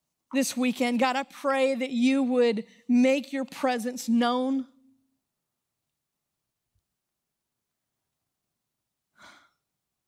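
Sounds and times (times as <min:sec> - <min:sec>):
woman sighing: 0:09.2 - 0:09.7.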